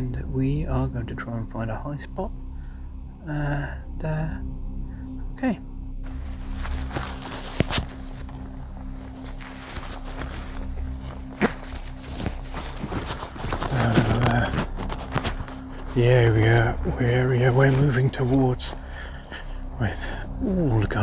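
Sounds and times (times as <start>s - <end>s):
steady low drone: 0.0s - 21.0s
footsteps on rough ground: 6.0s - 18.9s.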